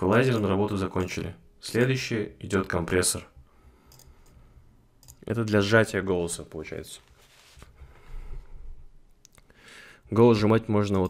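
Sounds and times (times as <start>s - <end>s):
man breathing: 3.4s - 4.8s, 7.7s - 10.1s.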